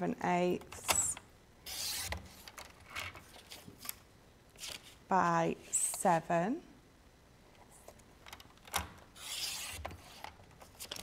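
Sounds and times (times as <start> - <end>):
paper trimmer blade cutting card: 9.2 - 10.2.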